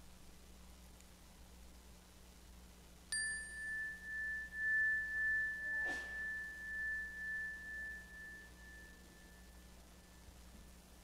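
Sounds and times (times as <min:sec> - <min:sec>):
meditation bell ringing: 0:03.1 - 0:11.0.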